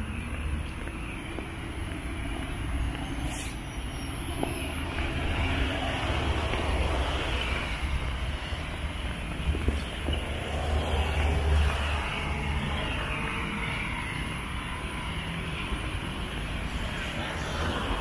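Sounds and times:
road traffic rumble: 0.0 - 18.0
vehicle passing: 0.0 - 18.0.

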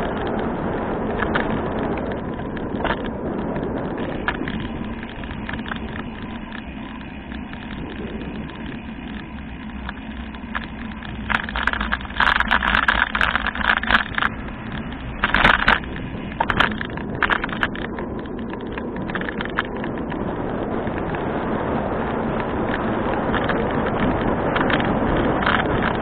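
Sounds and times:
bicycle tyres and wind rumble: 0.0 - 26.0
loud crackling rattles: 0.0 - 26.0.

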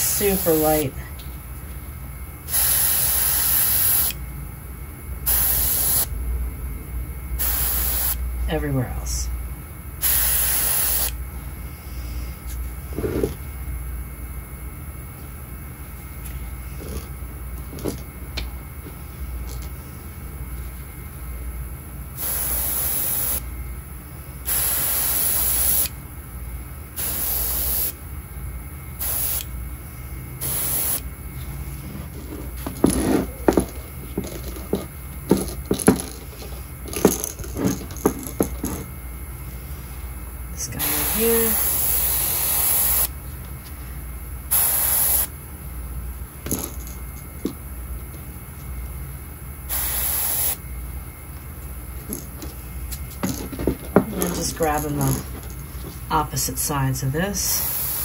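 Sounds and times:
steady low hum: 0.0 - 58.0
airbrush spraying hiss: 2.5 - 4.2, 5.3 - 6.1, 7.4 - 8.2, 10.0 - 11.2, 22.2 - 23.4, 24.5 - 25.9, 27.0 - 28.0, 29.0 - 29.5, 30.4 - 31.0, 40.7 - 43.1, 44.5 - 45.3, 49.7 - 50.6, 57.5 - 58.0.

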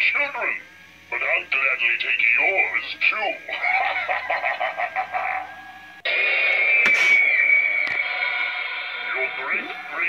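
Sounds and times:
evil laugh from speaker: 3.5 - 5.7
loud harsh drone: 6.1 - 10.0.

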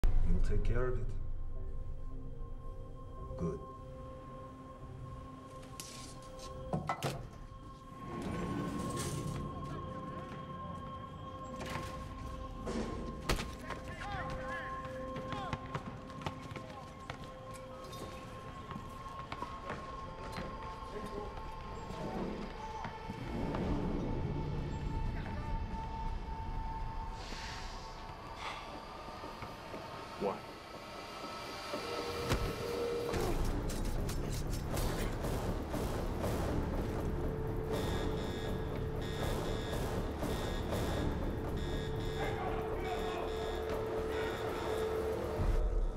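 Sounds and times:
film score sustained notes: 16.8 - 45.9
high-pitched electronic alarm beeps: 37.8 - 45.3.

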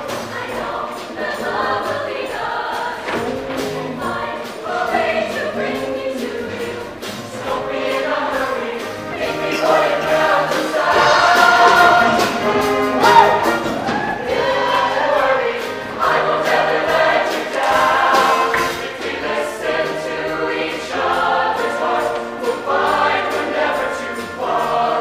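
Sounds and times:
choir singing in harmony: 0.0 - 25.0
instrumental accompaniment: 0.0 - 25.0.

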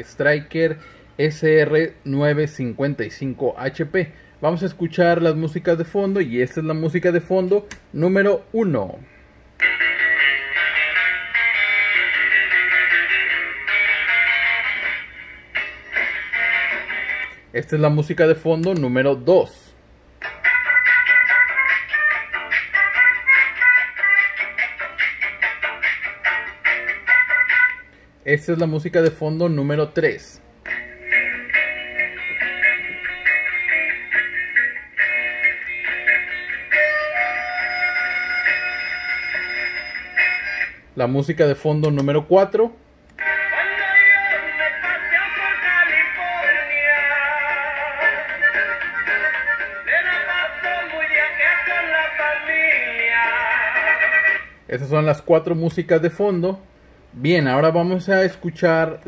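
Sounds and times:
thin narrow-band radio music: 4.6 - 56.2.

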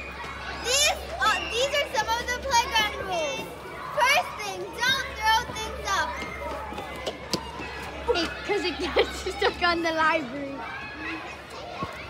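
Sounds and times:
girls' high-pitched exclamations: 0.0 - 6.6.

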